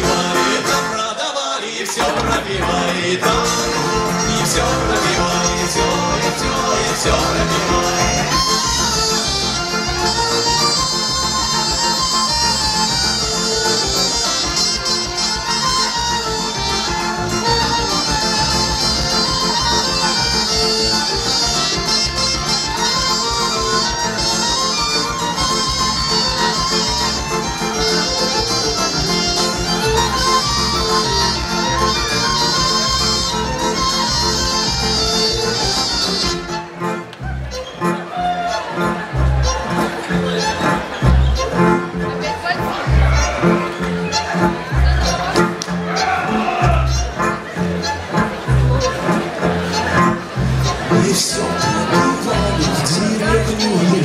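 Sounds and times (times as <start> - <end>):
fiddles playing tune: 0.0 - 1.4, 2.0 - 54.0
guitars: 0.0 - 54.0
small wind instrument: 7.1 - 54.0.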